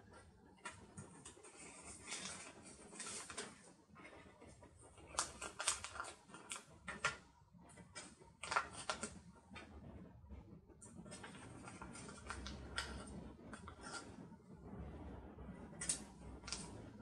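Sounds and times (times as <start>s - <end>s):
paper rustling and crackling: 0.1s - 9.7s, 11.0s - 14.1s, 15.8s - 17.0s.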